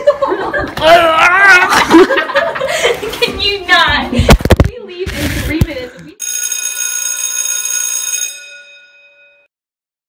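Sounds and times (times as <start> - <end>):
chime-like ringing tones: 6.2 - 9.5.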